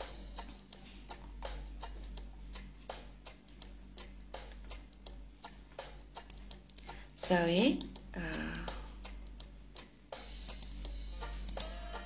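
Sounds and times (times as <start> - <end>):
light irregular clicks: 0.0 - 10.9.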